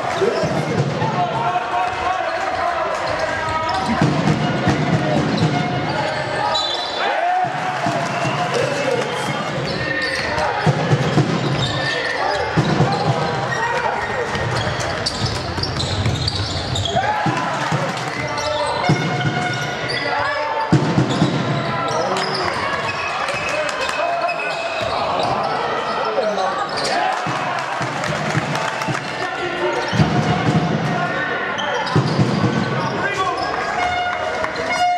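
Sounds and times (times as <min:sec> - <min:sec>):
players and spectators talking: 0:00.0 - 0:34.9
basketball bouncing on court: 0:14.2 - 0:19.7, 0:20.7 - 0:21.6.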